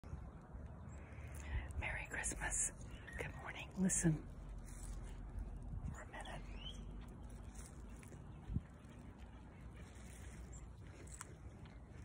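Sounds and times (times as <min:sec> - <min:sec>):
low steady rumble: 0:00.0 - 0:12.0
woman's voice: 0:01.8 - 0:04.3.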